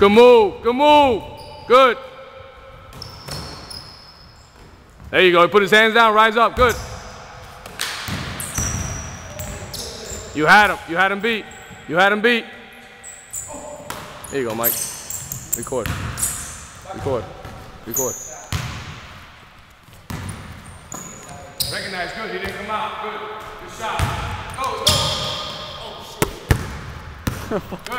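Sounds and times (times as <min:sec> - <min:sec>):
high shoe squeak: 0:01.3 - 0:01.7, 0:02.9 - 0:04.7, 0:08.4 - 0:10.5, 0:11.4 - 0:11.9, 0:12.8 - 0:16.6, 0:17.8 - 0:18.5, 0:20.2 - 0:22.2, 0:24.8 - 0:25.7
basketball bouncing on wooden floor: 0:15.8 - 0:16.2, 0:20.0 - 0:21.2, 0:24.0 - 0:25.3, 0:26.2 - 0:27.4.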